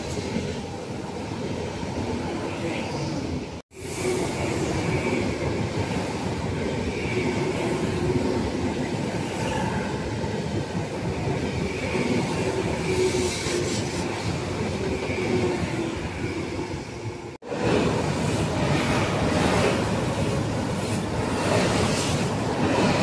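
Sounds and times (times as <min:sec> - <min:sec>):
train running past: 0:00.0 - 0:23.0.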